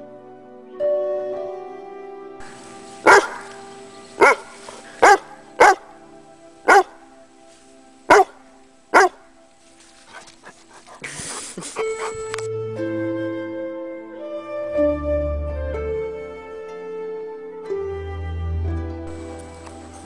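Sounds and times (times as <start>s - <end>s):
soft background music: 0.0s - 20.0s
rustling noise: 2.4s - 12.5s
dog barking loudly: 3.0s - 3.6s, 4.2s - 6.0s, 6.7s - 7.0s, 8.1s - 9.2s.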